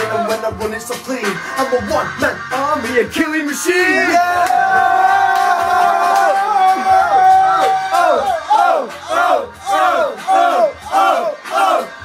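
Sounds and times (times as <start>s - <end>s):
voices whooping and hollering: 3.8s - 12.0s.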